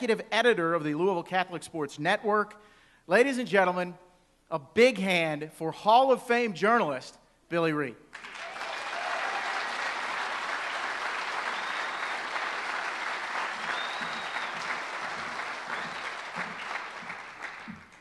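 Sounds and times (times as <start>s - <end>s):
crowd clapping: 8.1s - 18.0s.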